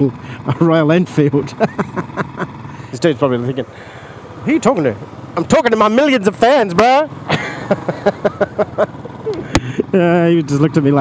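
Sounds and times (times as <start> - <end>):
motorcycle engine running: 0.0 - 11.0
man laughing: 1.4 - 2.9, 7.3 - 10.0.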